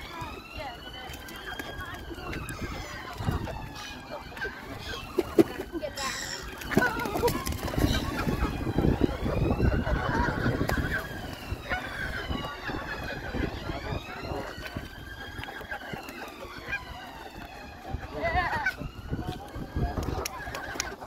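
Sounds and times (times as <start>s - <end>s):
siren wailing: 0.0s - 20.9s
geese honking: 0.0s - 21.0s.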